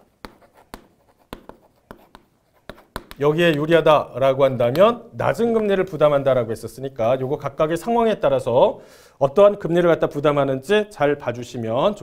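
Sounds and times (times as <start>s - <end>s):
chalk tapping and scratching on board: 0.0s - 3.7s.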